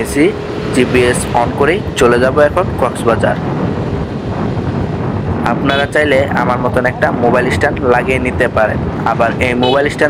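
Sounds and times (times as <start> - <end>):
man talking: 0.0 - 3.4, 5.4 - 10.0
motorcycle running: 0.0 - 10.0.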